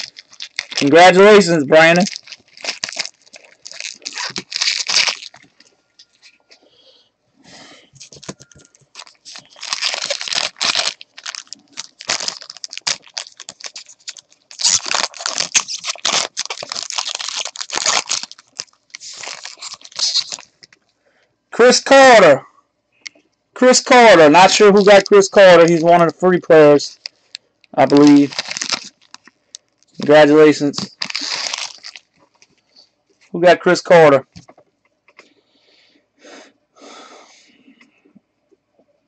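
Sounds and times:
foil wrapper crinkling and tearing: 0.0s - 6.4s, 8.0s - 20.8s, 24.4s - 25.9s, 26.9s - 32.6s.

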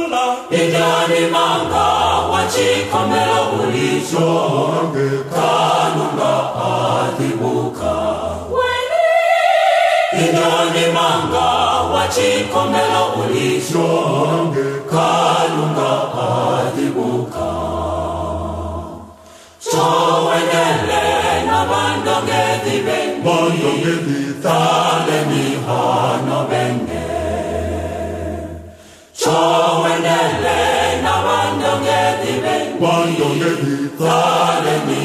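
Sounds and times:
choir singing gospel: 0.0s - 35.0s.

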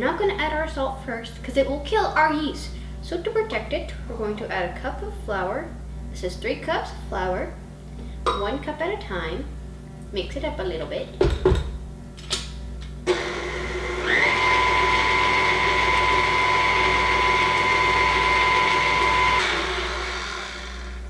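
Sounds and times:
knocks: 11.2s - 11.8s
stand mixer motor whine: 13.1s - 21.0s.

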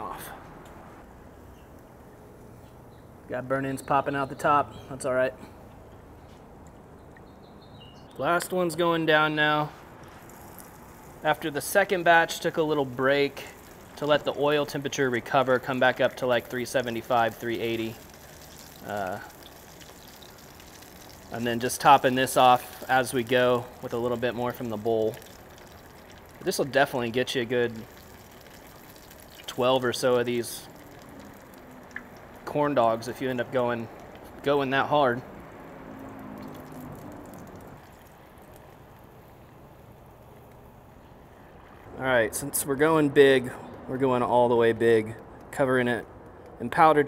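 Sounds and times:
oil sizzling and bubbling: 9.4s - 42.7s.

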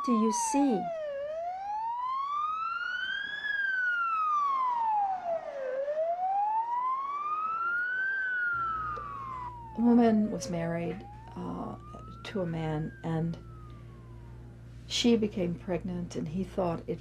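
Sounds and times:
police siren wailing: 0.0s - 15.2s.

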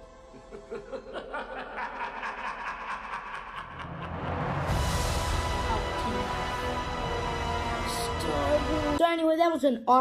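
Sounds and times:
film trailer music: 0.0s - 9.4s
person snickering: 0.4s - 4.4s.

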